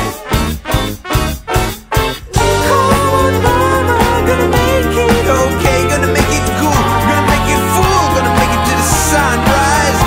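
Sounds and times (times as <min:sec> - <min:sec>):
jazz band music: 0:00.0 - 0:10.0.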